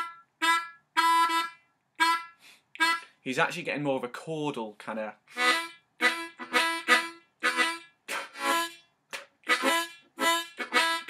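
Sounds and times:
harmonica blues notes: 0:00.0 - 0:03.2, 0:05.3 - 0:11.0.

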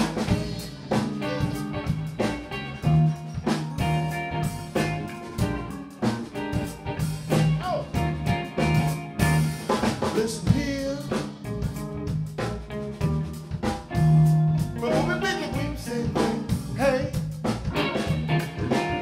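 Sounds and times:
drum kit steady beat: 0:00.0 - 0:19.0
electric bass: 0:00.0 - 0:19.0
electric guitar with bent notes: 0:00.0 - 0:19.0
keyboard: 0:00.0 - 0:19.0.

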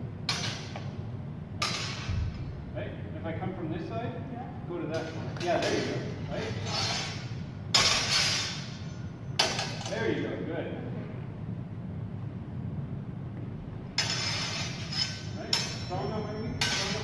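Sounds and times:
sword blades clashing: 0:00.3 - 0:00.8, 0:01.6 - 0:02.1, 0:05.0 - 0:10.0, 0:14.0 - 0:17.0.

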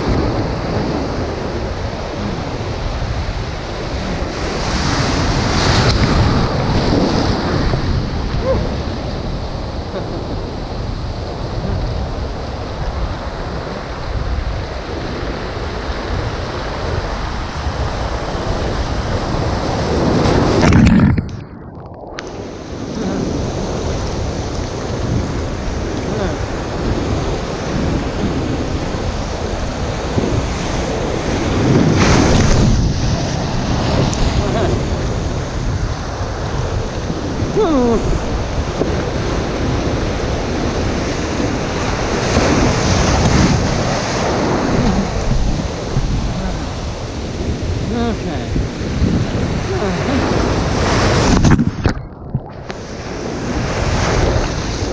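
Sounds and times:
surf churning and washing: 0:00.0 - 0:54.9
wind buffeting microphone: 0:00.0 - 0:54.9.

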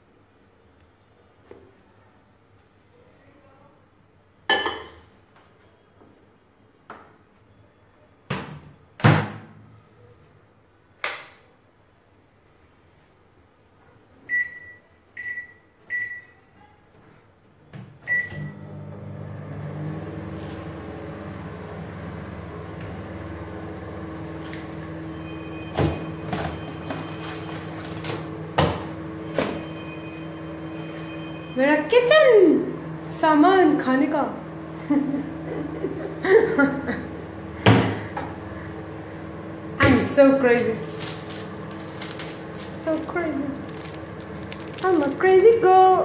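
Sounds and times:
keypad beeps: 0:14.3 - 0:16.4
microwave humming: 0:18.0 - 0:46.0.

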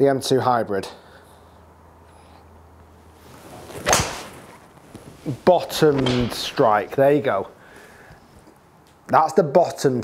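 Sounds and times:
golf club swish: 0:03.1 - 0:07.1
golf club striking ball: 0:03.8 - 0:04.4.

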